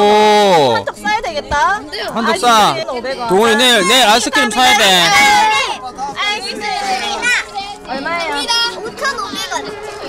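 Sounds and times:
children talking excitedly: 0.0 - 10.0.

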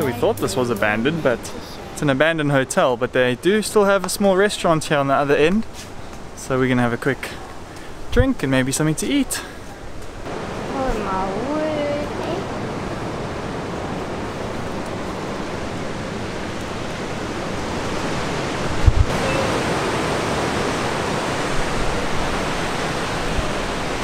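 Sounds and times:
wind: 0.0 - 24.0
ocean surf breaking: 10.2 - 24.0.

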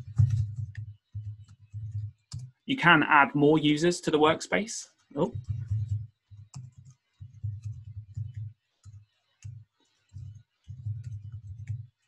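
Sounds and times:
typing on computer keyboard: 0.0 - 2.6, 5.2 - 12.0.

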